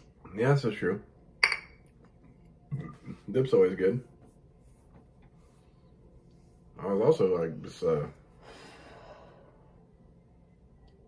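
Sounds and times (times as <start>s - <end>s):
glass bottle clinking: 1.4s - 1.9s.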